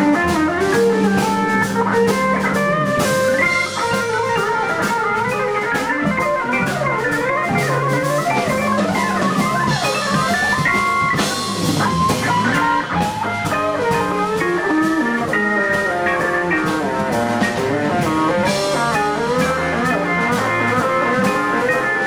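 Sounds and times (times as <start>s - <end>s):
drum kit: 0.0s - 22.0s
electric guitar solo: 0.0s - 22.0s
organ: 0.0s - 22.0s.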